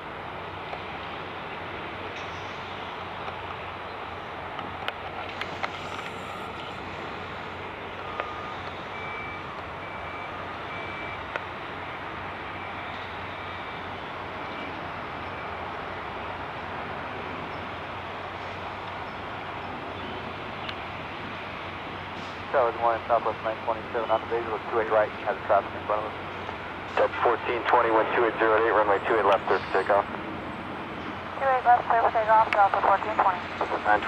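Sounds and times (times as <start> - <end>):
distant jet engines rushing: 0.0 - 34.0
faint short beeps: 8.0 - 11.2.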